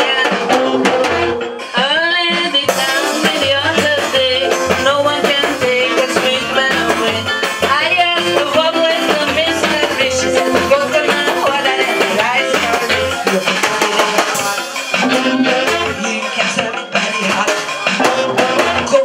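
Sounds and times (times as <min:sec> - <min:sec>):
woman singing: 0:00.0 - 0:01.0, 0:01.7 - 0:19.0
band with guitars and drums: 0:00.0 - 0:19.0.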